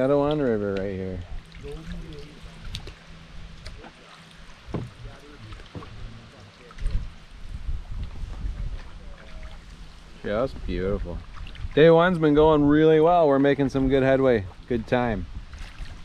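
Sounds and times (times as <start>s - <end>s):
low uneven rumble: 0.0s - 16.0s
paddle strokes in water: 1.3s - 11.8s, 15.4s - 16.0s.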